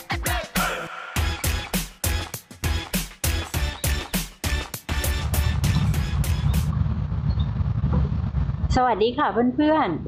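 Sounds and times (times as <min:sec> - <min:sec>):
intro music: 0:00.0 - 0:06.8
low rumble of outdoor noise: 0:06.7 - 0:10.0.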